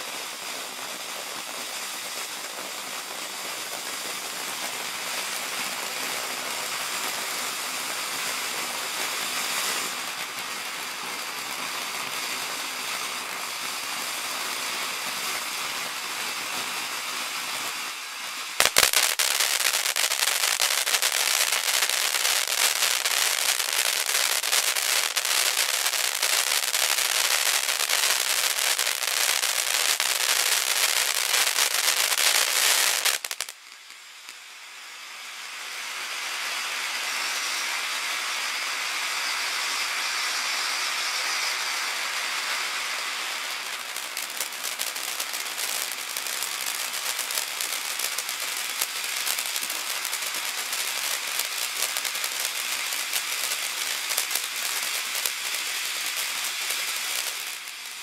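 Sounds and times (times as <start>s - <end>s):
firework fountain hissing: 0.0s - 58.0s.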